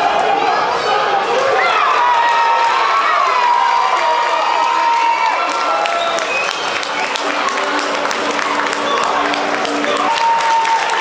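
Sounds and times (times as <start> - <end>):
crowd cheering and yelling: 0.0 - 11.0
people clapping: 1.7 - 11.0.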